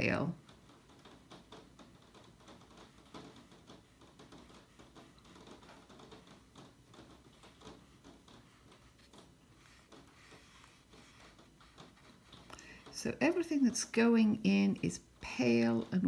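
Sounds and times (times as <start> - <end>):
brush dabbing paint on paper: 1.2 - 16.0.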